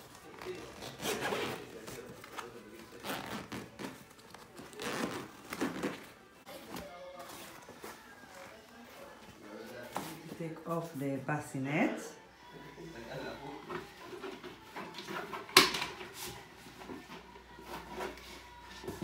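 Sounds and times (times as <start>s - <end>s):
fabric rustling: 0.0s - 9.0s.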